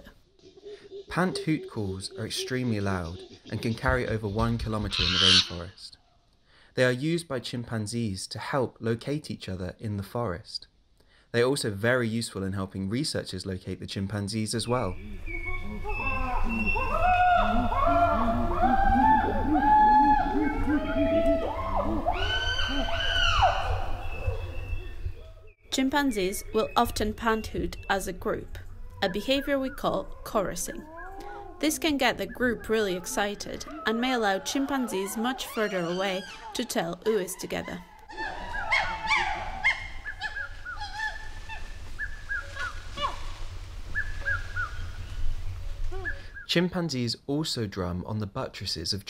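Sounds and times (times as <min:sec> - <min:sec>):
chimpanzees pant-hooting: 0:00.4 - 0:01.1, 0:30.9 - 0:31.6, 0:32.5 - 0:36.7, 0:37.7 - 0:41.7
chimpanzees pant-hooting and screaming: 0:15.2 - 0:24.6, 0:30.8 - 0:31.6, 0:32.5 - 0:36.9, 0:37.7 - 0:43.2.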